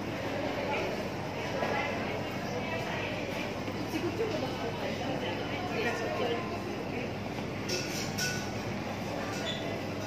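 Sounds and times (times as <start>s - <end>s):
many indistinct voices: 0.0s - 10.0s.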